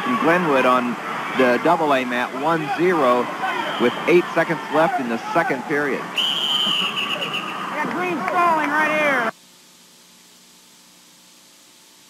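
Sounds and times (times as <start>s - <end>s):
arena crowd noise: 0.0s - 9.4s
referee's whistle blast: 3.6s - 4.1s, 6.2s - 7.6s.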